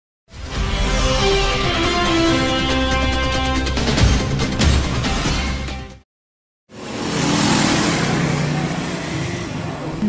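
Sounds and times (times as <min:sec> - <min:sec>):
street traffic engine hum: 0:06.7 - 0:10.0.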